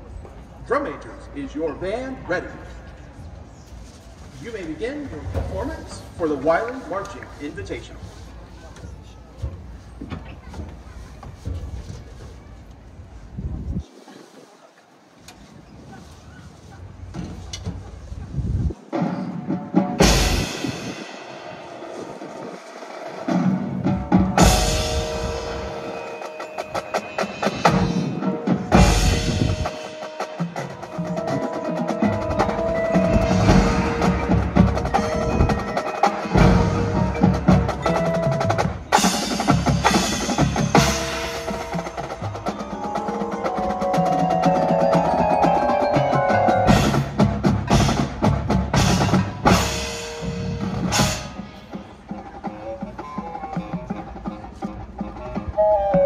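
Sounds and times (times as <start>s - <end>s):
wind buffeting microphone: 8.9s - 14.6s, 15.3s - 19.0s, 28.0s - 29.8s
marching band playing: 18.9s - 56.0s
loud accented band hit: 19.0s - 51.7s.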